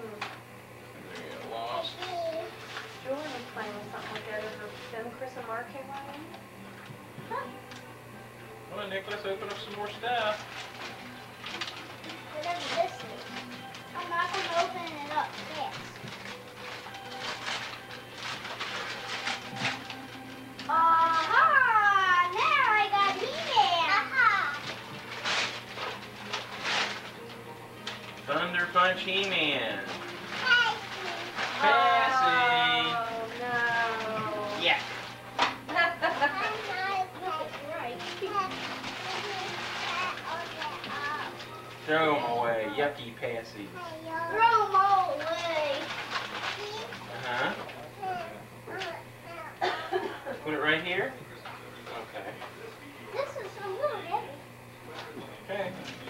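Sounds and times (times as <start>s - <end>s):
background music with held note: 1.0s - 45.2s
wrapping paper rustling and tearing: 1.7s - 6.3s, 9.0s - 42.4s, 44.2s - 49.0s
children and adults talking: 36.2s - 49.8s, 52.9s - 54.6s.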